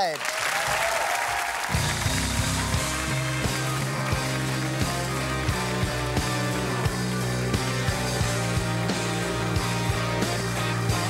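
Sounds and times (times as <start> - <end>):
audience applause: 0.0 - 11.0
live band playing: 1.7 - 11.0.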